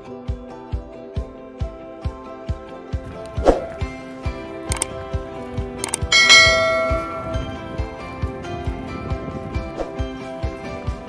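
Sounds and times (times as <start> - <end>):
background music with steady beat: 0.0 - 11.0
notification bell chime: 5.8 - 7.9.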